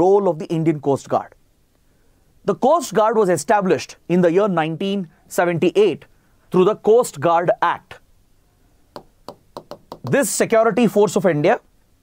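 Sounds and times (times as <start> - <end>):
pen tapping on screen: 8.9 - 10.2.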